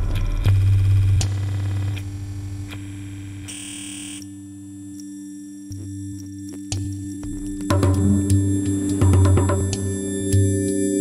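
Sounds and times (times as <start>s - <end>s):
buzzy electronic tone: 0.0s - 4.8s
minimal tech house track: 6.6s - 10.6s
low synth drone: 7.1s - 11.0s.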